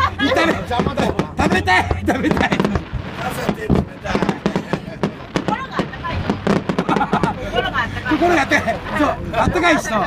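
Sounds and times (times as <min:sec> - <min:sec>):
fireworks cracking and popping: 0:00.3 - 0:07.4.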